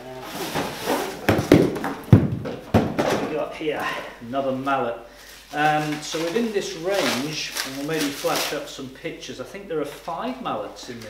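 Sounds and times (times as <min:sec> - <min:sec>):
cardboard box rustling and scraping: 0:00.2 - 0:01.4
sharp knocks: 0:01.2 - 0:03.4.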